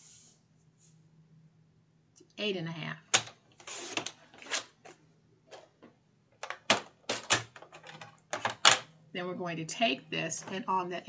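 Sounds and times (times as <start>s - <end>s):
plastic clicks and clacks: 6.4s - 8.9s.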